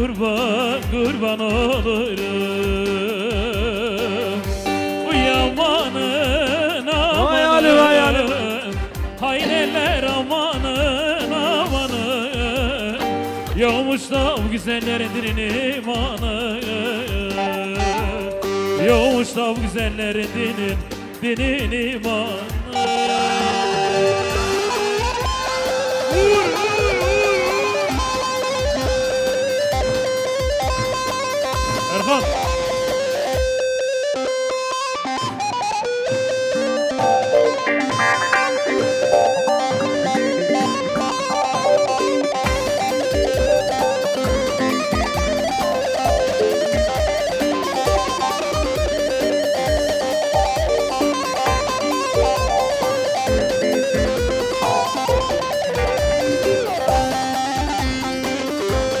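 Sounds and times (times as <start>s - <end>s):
bass drum beating dance rhythm: 0.0s - 22.8s, 24.3s - 33.7s, 36.2s - 59.0s
folk dance band playing: 3.4s - 21.9s, 22.5s - 59.0s.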